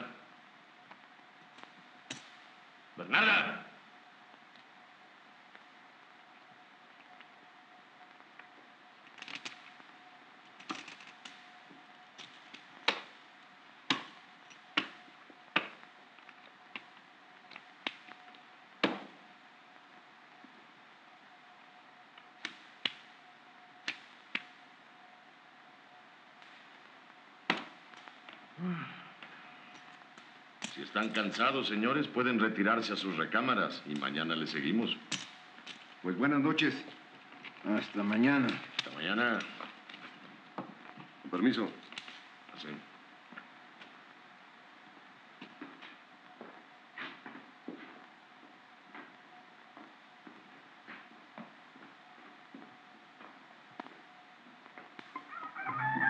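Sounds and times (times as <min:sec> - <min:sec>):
faint steady tone: 0:00.0 - 0:56.0.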